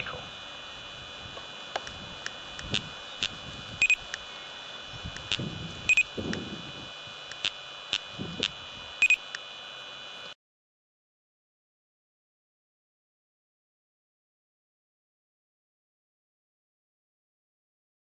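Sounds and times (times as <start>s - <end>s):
steady high hiss: 0.0s - 10.4s
electronic double beeps: 3.8s - 4.0s, 5.9s - 6.1s, 9.0s - 9.2s
light electronic clicks: 5.2s - 6.4s, 7.3s - 9.5s.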